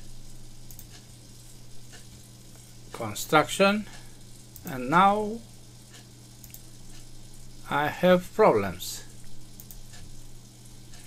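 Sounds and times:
background hiss: 0:00.0 - 0:11.0
low electrical hum: 0:00.0 - 0:11.0
faint clicks: 0:00.6 - 0:02.7, 0:03.9 - 0:04.8, 0:05.8 - 0:07.2, 0:09.2 - 0:10.2.

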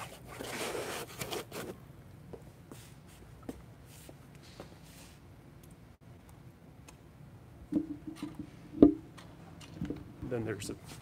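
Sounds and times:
parts scraping against foam: 0:00.0 - 0:01.8.

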